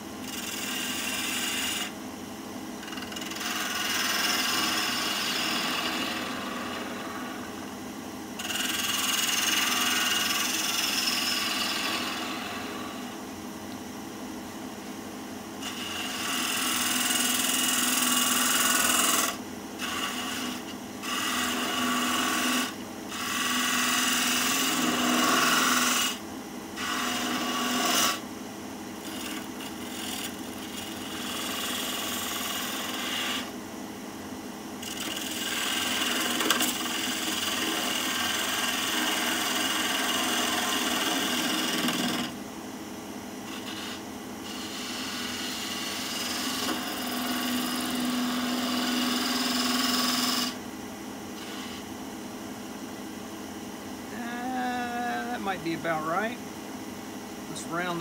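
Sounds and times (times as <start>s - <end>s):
wood lathe humming: 0.0s - 2.0s, 2.8s - 7.7s, 8.4s - 13.2s, 15.6s - 26.2s, 26.8s - 28.2s, 29.0s - 33.6s, 34.8s - 42.4s, 43.4s - 50.6s, 51.4s - 51.9s, 54.1s - 56.4s
gouge cutting hiss: 0.3s - 1.9s, 2.8s - 7.3s, 8.4s - 13.0s, 15.6s - 26.2s, 29.0s - 33.5s, 43.5s - 50.6s, 51.4s - 51.9s.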